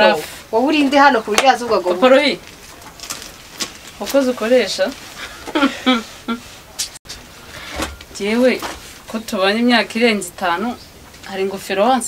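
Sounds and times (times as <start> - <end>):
woman speaking: 0.0 - 2.4, 4.0 - 5.0, 8.1 - 12.0.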